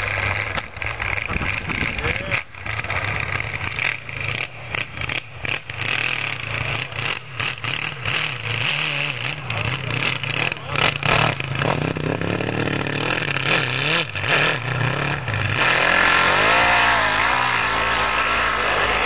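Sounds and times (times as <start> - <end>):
snowmobile engine running unevenly: 0.0 - 19.0.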